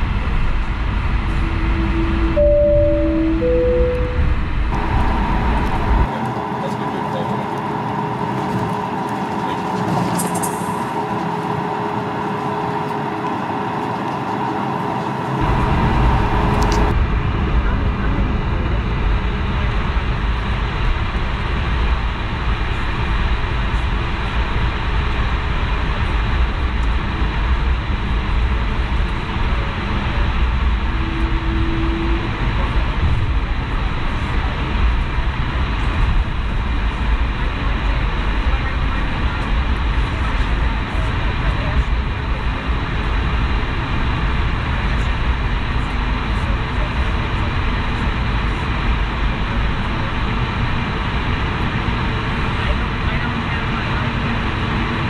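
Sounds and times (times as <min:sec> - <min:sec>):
light hum with mid-pitched tone: 0:00.0 - 0:06.1
aircraft taxiing rumble: 0:00.0 - 0:55.0.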